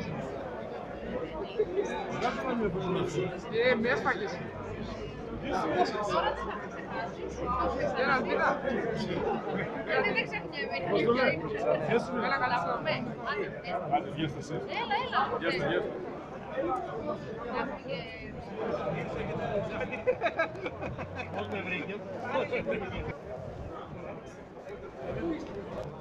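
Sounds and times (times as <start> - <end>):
people talking at once: 0.0 - 26.0.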